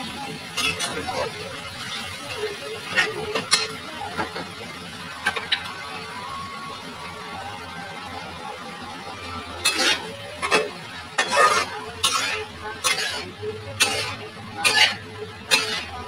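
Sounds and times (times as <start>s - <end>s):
spatula scraping metal wok: 0.5s - 2.1s, 2.8s - 3.8s, 9.6s - 16.0s.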